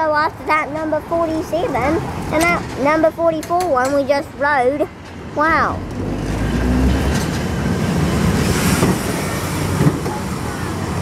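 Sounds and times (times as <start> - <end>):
tram wheels rumbling on rails: 0.0 - 11.0.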